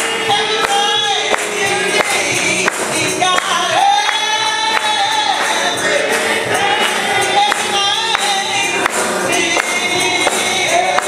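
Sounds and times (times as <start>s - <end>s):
sharp percussive hits: 0.0s - 11.0s
voices singing along: 0.0s - 11.0s
woman singing into microphone: 0.0s - 11.0s.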